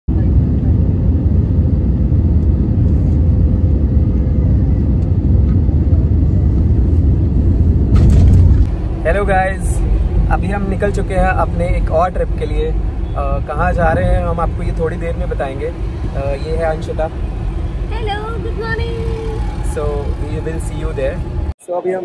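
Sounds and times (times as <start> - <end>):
jet engine and airflow rumble: 0.1 - 21.6.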